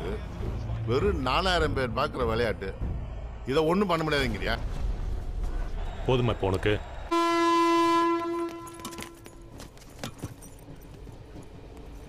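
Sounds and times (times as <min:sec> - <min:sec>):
train horn long note: 0:07.1 - 0:09.2.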